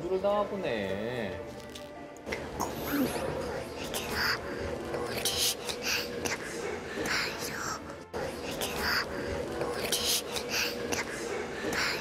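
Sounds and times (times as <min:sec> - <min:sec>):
person whispering: 0:02.6 - 0:12.0.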